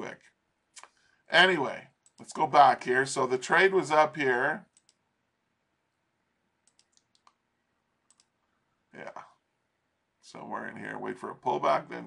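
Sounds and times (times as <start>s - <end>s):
computer mouse clicks: 4.7s - 5.0s, 6.6s - 7.4s, 8.1s - 8.4s.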